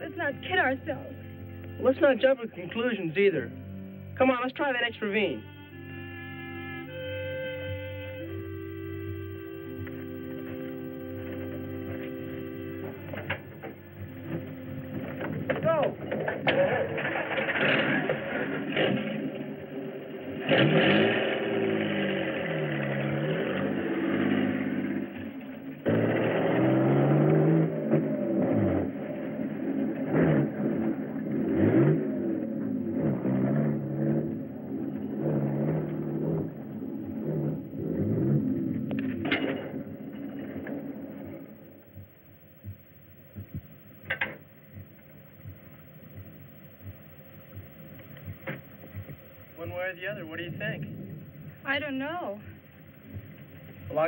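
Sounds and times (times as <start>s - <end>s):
buggy engine revving: 0.0s - 42.2s, 43.4s - 54.0s.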